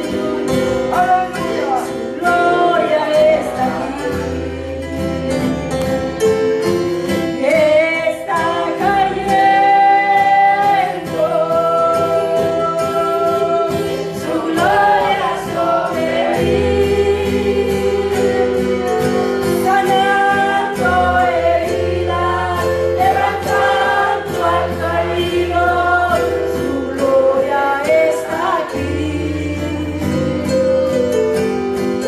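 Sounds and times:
woman singing into a microphone: 0.0s - 5.6s, 7.2s - 31.2s
acoustic guitar: 0.0s - 32.0s
keyboard: 0.0s - 32.0s.

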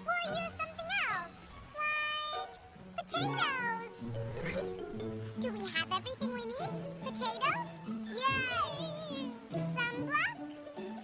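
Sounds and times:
cartoon background music: 0.0s - 11.0s
squeaky voice-like sounds: 3.0s - 10.4s.

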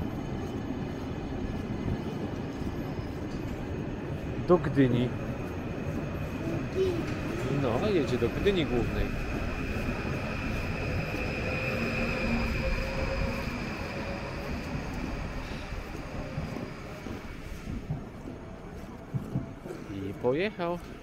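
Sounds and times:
electric train whine and rolling: 0.0s - 21.0s.

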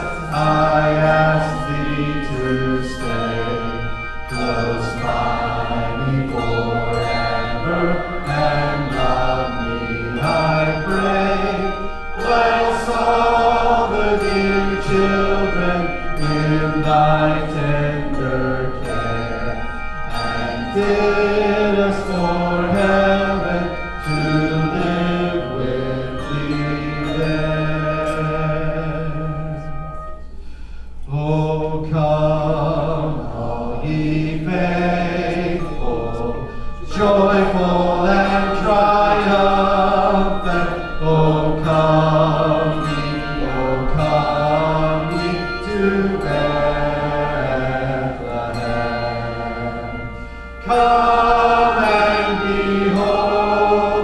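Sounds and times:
man singing a carol: 0.0s - 29.8s, 31.1s - 54.0s
handbell choir playing: 0.0s - 54.0s.

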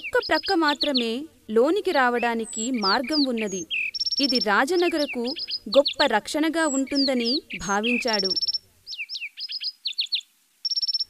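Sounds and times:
small birds chirping: 0.0s - 11.0s
rapid high bird trill: 2.0s - 11.0s.

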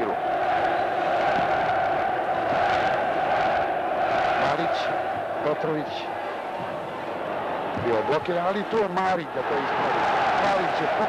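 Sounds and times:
crowd chanting in unison: 0.0s - 11.0s.

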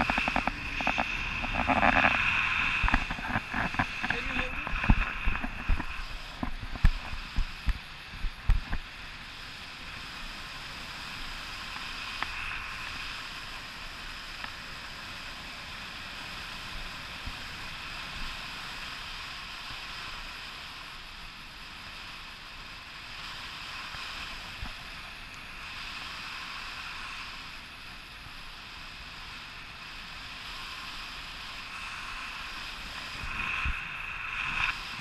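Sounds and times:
wind rushing over microphone: 0.0s - 35.0s.

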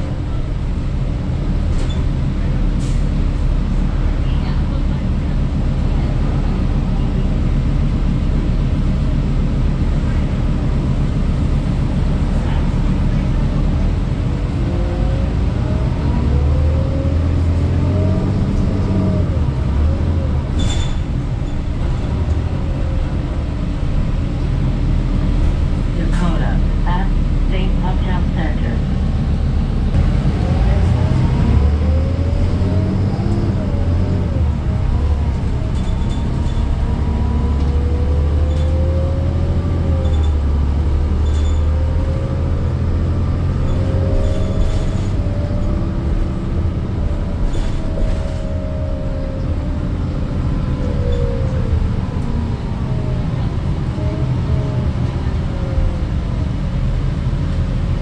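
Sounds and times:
bus diesel engine drone: 0.0s - 58.0s
bus whine: 0.0s - 58.0s.

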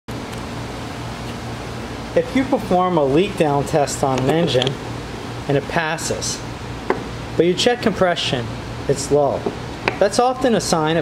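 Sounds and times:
ventilation hum and hiss: 0.1s - 11.0s.

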